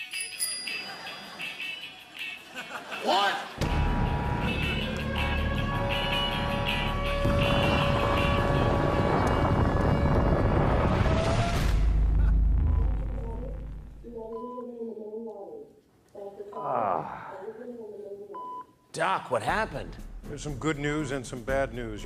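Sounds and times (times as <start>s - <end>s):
music: 0.0s - 12.1s, 19.5s - 22.0s
explosion blast and rumble: 7.2s - 14.1s.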